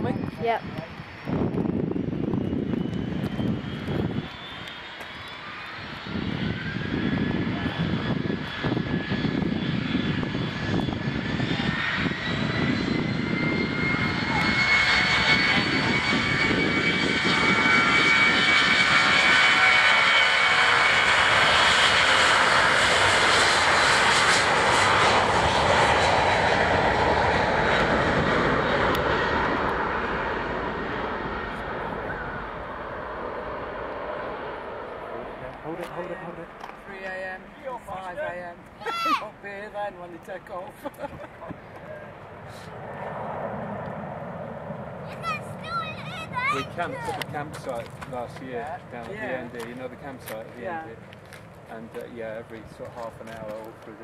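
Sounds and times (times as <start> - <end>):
jet engine rumble: 0.0 - 54.0
jet engine whine rising: 0.0 - 54.0.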